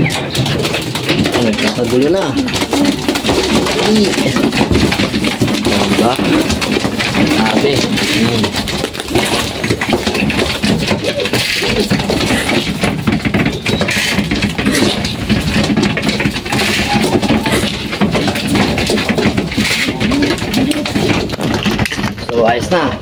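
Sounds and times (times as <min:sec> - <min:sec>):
pigeon wings flapping: 0:00.0 - 0:23.0.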